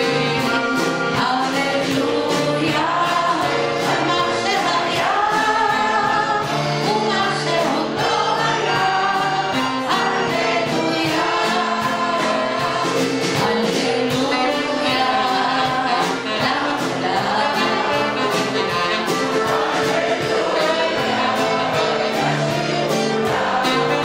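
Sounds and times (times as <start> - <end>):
woman singing lead: 0.0 - 22.3
crowd singing along: 0.0 - 24.0
piano: 0.0 - 24.0
steady drum beat: 0.0 - 24.0.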